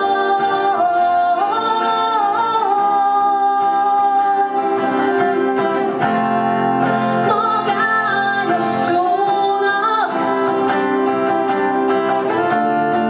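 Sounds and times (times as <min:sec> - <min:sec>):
woman singing: 0:00.0 - 0:06.0, 0:06.8 - 0:13.0
strummed acoustic guitar: 0:00.0 - 0:13.0.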